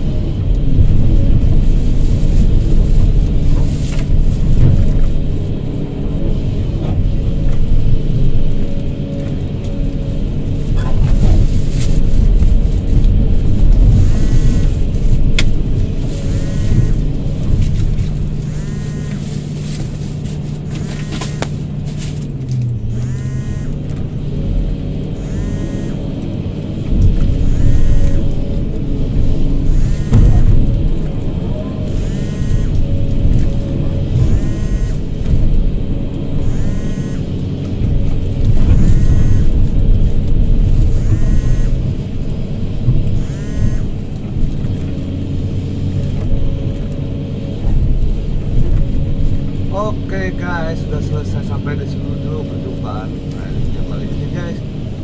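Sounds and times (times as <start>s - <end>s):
excavator diesel engine: 0.0s - 55.0s.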